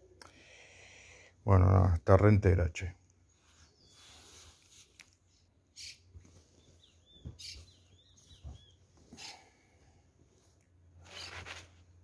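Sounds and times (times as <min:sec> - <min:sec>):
faint high bird chirps: 0:05.7 - 0:09.4.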